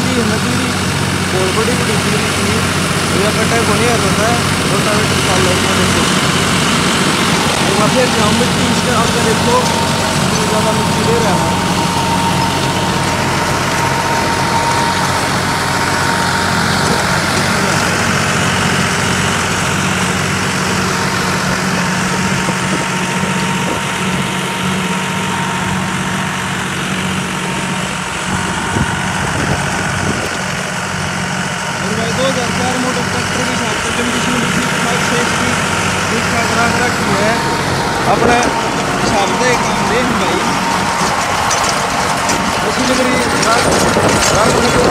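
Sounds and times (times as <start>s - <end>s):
rotary tiller churning soil: 0.0s - 44.9s
tractor diesel engine under load: 0.0s - 44.9s.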